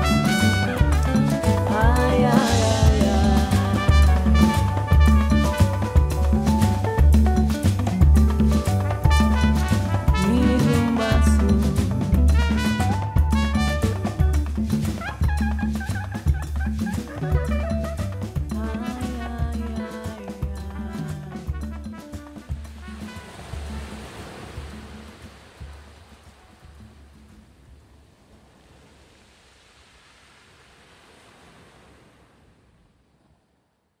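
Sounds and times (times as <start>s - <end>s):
double bass: 0.0s - 24.0s
drums and percussion: 0.0s - 27.8s.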